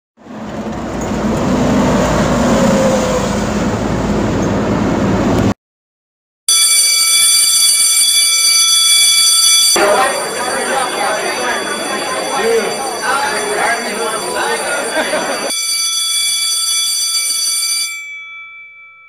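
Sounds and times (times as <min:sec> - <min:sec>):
electric bell ringing: 0:06.5 - 0:19.0.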